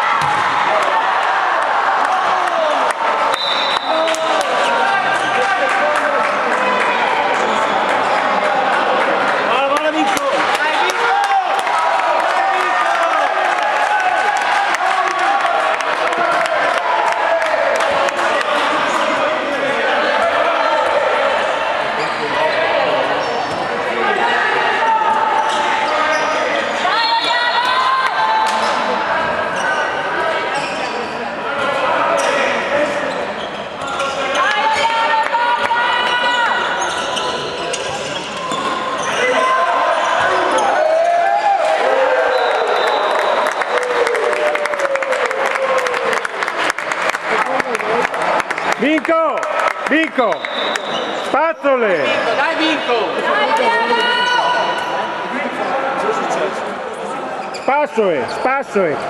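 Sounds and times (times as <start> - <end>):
ball bouncing on indoor court: 0.1 - 0.6.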